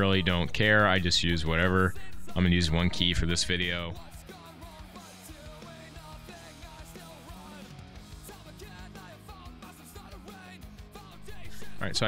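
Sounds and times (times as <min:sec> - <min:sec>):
rock music with singing: 0:00.0 - 0:12.0.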